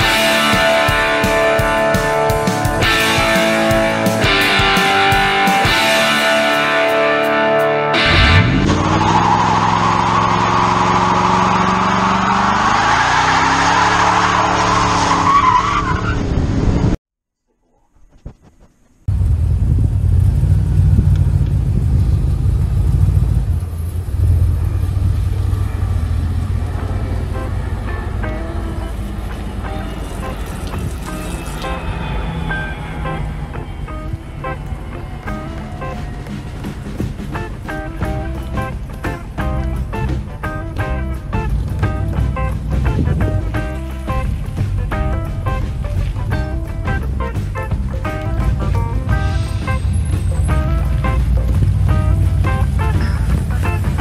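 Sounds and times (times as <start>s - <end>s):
vehicle engine accelerating: 0.0s - 17.0s, 19.1s - 54.0s
engine deep rumble: 19.0s - 54.0s
tyres on gravel: 32.7s - 54.0s.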